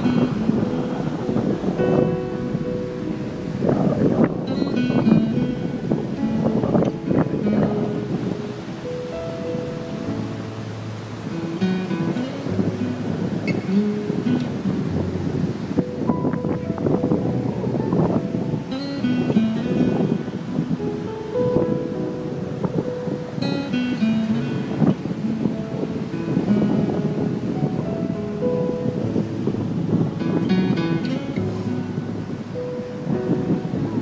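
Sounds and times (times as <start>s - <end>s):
guitar-led background music: 0.0s - 34.0s.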